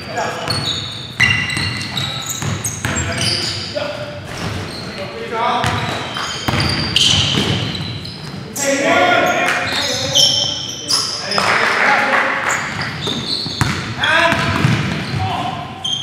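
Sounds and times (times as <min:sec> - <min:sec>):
sneakers squeaking: 0:00.0 - 0:11.6, 0:12.4 - 0:16.0
basketball bouncing on wooden floor: 0:05.6 - 0:07.8, 0:12.7 - 0:15.3.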